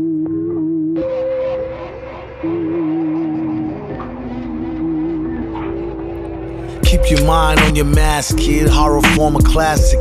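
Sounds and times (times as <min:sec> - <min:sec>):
melodic sample over low drone: 0:00.0 - 0:10.0
rapped vocal: 0:01.0 - 0:10.0
drums hitting: 0:06.8 - 0:10.0.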